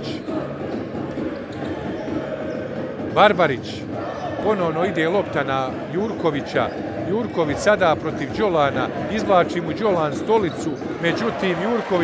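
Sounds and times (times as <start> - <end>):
crowd noise in sports hall: 0.0 - 12.0.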